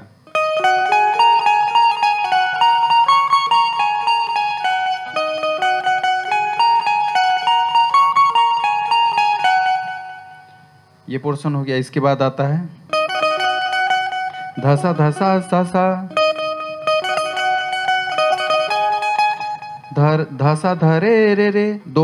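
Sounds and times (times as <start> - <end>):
plucked banjo notes: 0.0 - 10.4, 12.7 - 21.1.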